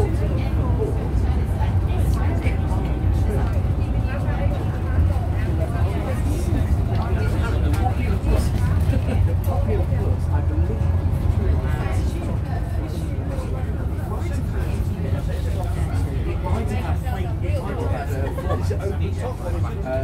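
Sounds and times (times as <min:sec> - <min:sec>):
bus diesel engine drone: 0:00.0 - 0:20.0
passengers talking: 0:00.0 - 0:20.0.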